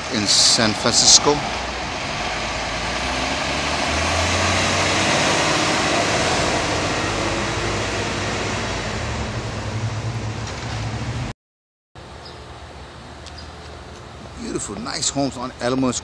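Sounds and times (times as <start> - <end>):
truck driving past: 0.0 - 11.3
road noise: 0.0 - 11.4, 12.0 - 16.0.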